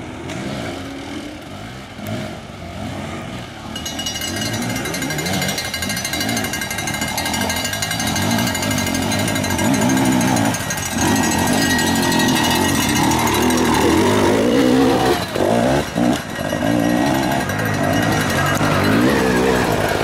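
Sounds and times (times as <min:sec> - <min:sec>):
dirt bike engines revving: 0:00.0 - 0:20.0.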